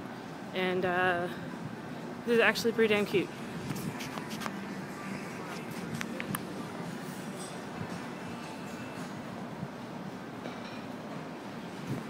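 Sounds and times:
city street rumble: 0.0s - 12.0s.

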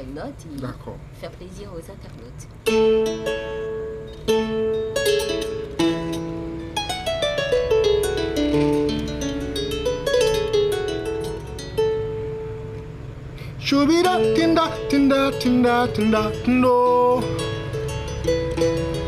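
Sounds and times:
kora plucked melody: 2.6s - 19.0s.

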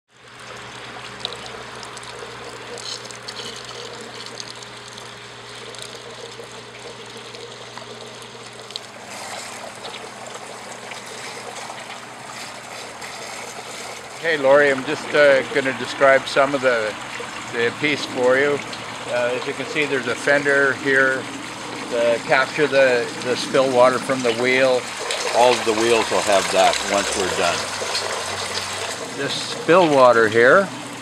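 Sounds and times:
water trickling and splashing: 0.1s - 31.0s.

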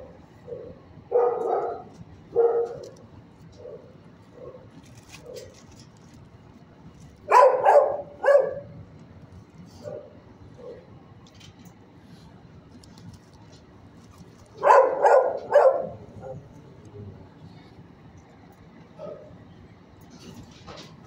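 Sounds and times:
dog barking: 0.4s - 3.0s, 7.3s - 8.7s, 14.6s - 16.4s, 19.0s - 19.3s.

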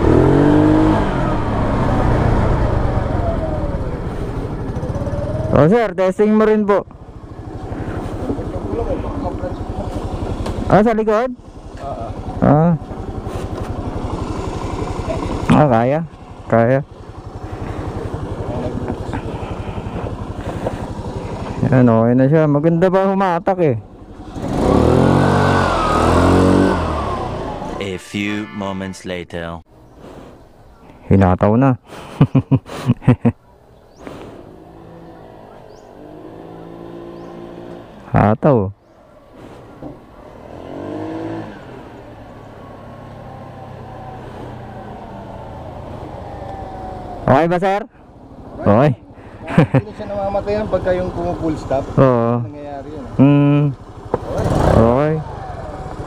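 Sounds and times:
scooter engine running: 0.0s - 28.8s, 33.4s - 38.1s, 38.8s - 56.0s.

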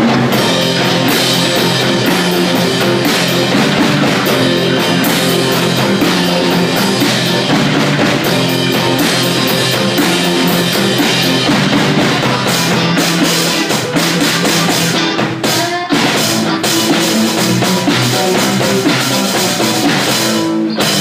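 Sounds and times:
drum beat: 0.0s - 21.0s
electric guitar lines: 0.0s - 21.0s.

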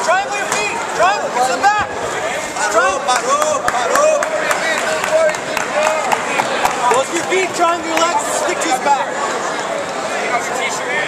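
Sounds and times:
crowd talking and shouting: 0.0s - 11.0s.

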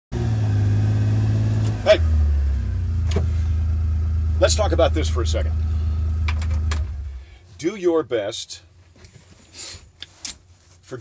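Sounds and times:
vehicle engine idling: 0.2s - 7.6s.

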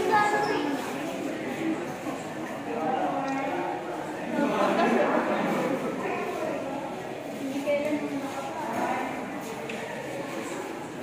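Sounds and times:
background murmur: 0.0s - 11.0s
people talking indoors: 0.0s - 11.0s.

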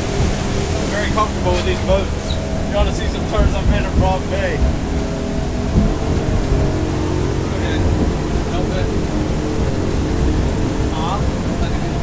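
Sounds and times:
outboard engines droning: 0.0s - 12.0s
water noise: 0.0s - 12.0s
wind: 0.0s - 12.0s.

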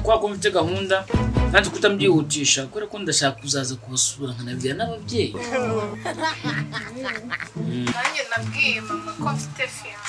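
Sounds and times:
background music: 0.0s - 2.7s, 4.5s - 10.0s
man talking: 0.0s - 6.2s, 6.9s - 8.0s.

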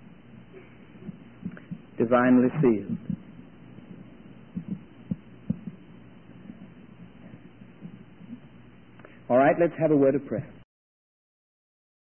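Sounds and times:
faint recording hiss: 0.0s - 10.6s
soft low thumps: 0.6s - 9.0s.

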